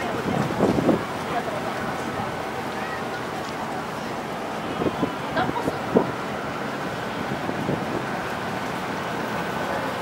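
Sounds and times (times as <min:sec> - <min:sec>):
wind on microphone: 0:00.0 - 0:01.2.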